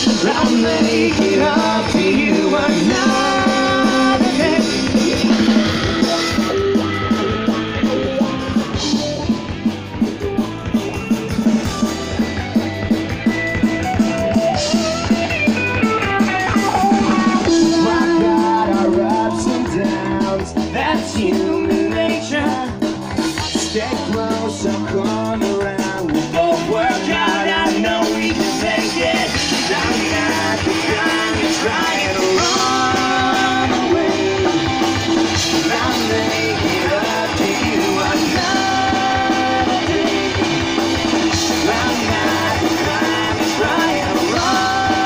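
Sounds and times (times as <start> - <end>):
drum beat: 0.0 - 45.0
electric guitar: 0.0 - 45.0
rock band through sound system: 0.0 - 45.0.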